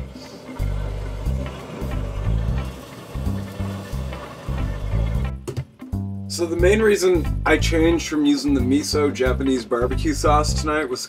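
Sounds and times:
blowtorch hissing: 0.0 - 5.4
background music with bass line: 0.0 - 11.0.

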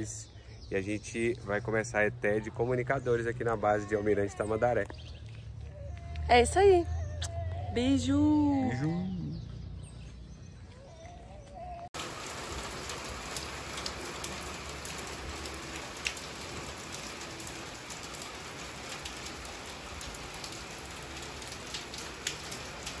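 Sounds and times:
rain falling: 12.0 - 23.0.

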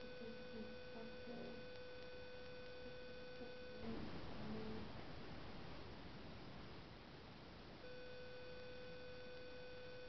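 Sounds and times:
faint background hiss: 0.0 - 10.0
steady hum: 0.0 - 10.0.

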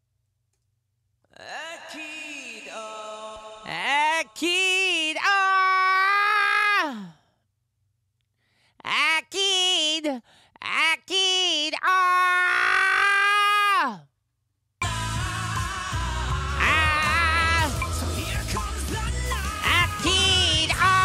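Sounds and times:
man singing unaccompanied: 1.4 - 5.4, 14.8 - 21.0
backing music: 14.8 - 21.0.

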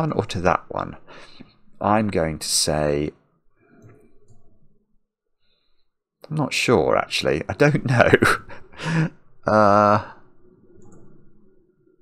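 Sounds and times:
computer mouse clicks: 10.7 - 11.2.

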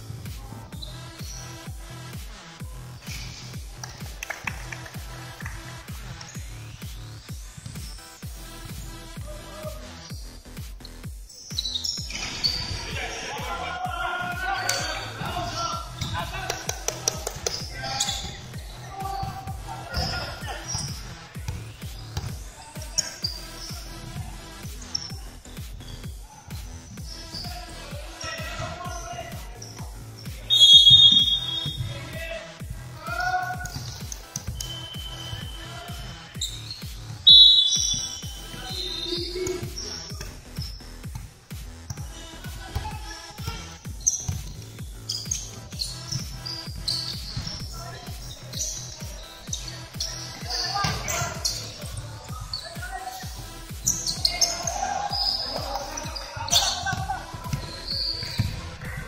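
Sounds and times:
players shouting: 12.5 - 21.6, 26.2 - 40.4, 45.3 - 59.0
basketball bouncing on wooden court: 14.8 - 23.9, 24.7 - 59.0
shrill referee whistle blasts: 30.5 - 31.9, 34.5 - 36.6, 37.2 - 39.4.

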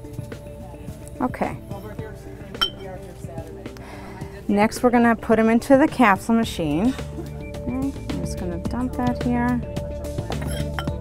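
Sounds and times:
soft background music: 0.0 - 11.0
glass pestle clinking in mortar: 2.6 - 2.9, 10.4 - 11.0.

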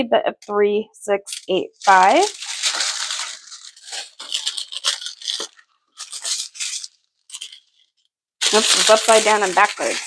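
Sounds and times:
beads rattling in bags: 1.3 - 7.8, 8.4 - 10.0
plastic bags crinkling: 1.3 - 10.0.

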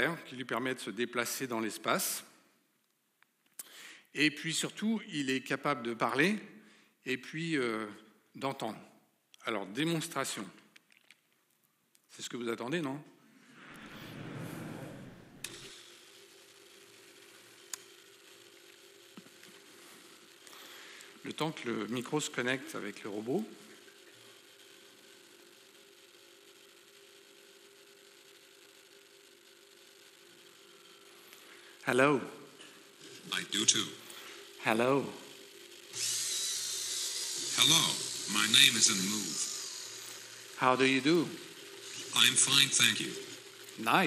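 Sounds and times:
steady low hum: 13.0 - 15.8
robot servo motors whirring: 35.9 - 43.8.

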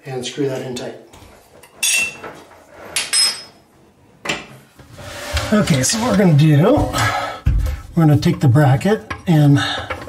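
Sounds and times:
metal hardware clinking: 3.0 - 3.6.

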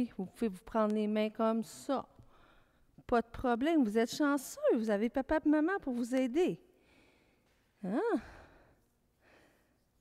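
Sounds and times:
woman speaking: 0.0 - 2.1, 3.0 - 6.6, 7.8 - 8.4.

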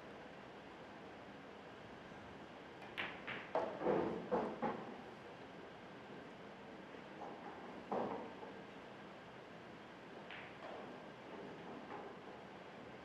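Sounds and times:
pool balls clicking: 2.8 - 3.8, 10.3 - 10.9
cue ball hitting cushion: 2.9 - 4.8.

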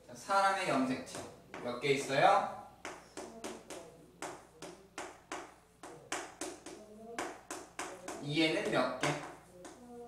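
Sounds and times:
chalk tapping and scraping: 2.8 - 10.0.

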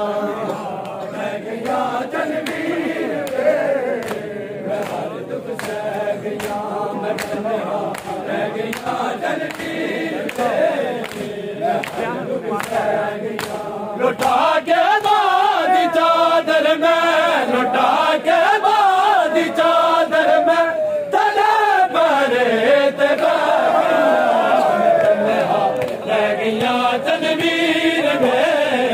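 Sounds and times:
crowd of men chanting: 0.0 - 28.9
chest-beating slaps: 1.6 - 14.4.

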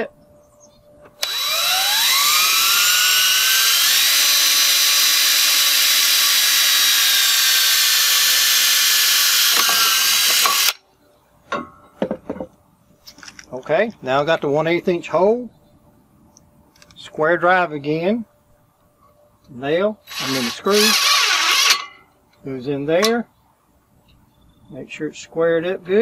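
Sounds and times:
cordless drill whining: 1.2 - 10.8, 20.1 - 21.8.

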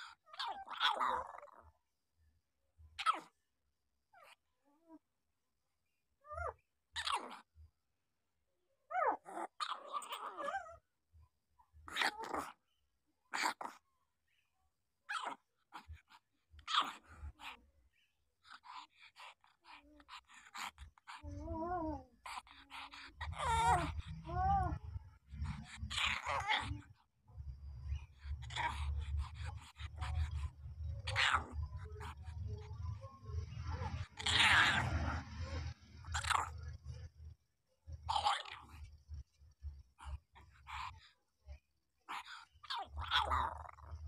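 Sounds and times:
puppies whimpering: 21.2 - 26.8
newborn puppies crying: 23.2 - 24.8.

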